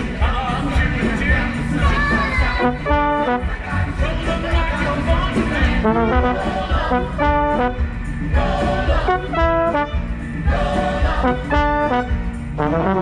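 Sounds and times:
pit orchestra playing: 0:01.0 - 0:13.0
held brass chords: 0:02.2 - 0:13.0.

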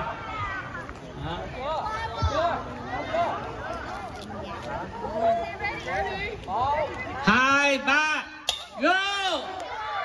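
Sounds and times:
crowd chatter: 0:00.0 - 0:10.0
man shouting: 0:07.3 - 0:09.5.

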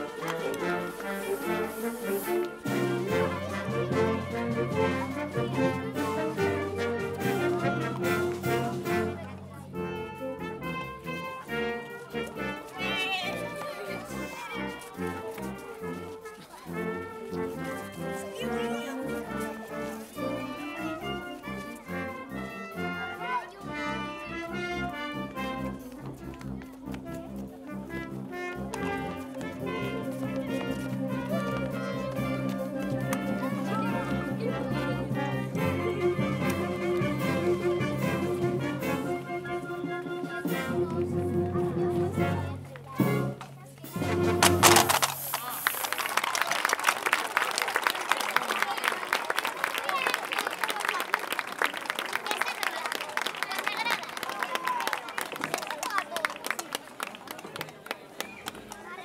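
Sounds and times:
audience applause: 0:00.0 - 0:01.4, 0:44.6 - 0:59.0
wind band playing: 0:00.0 - 0:56.0.

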